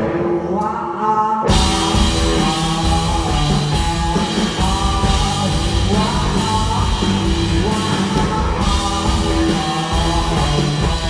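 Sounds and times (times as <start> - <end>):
electric guitar: 0.0 - 11.0
person singing: 0.0 - 11.0
drum kit and cymbals: 1.5 - 11.0.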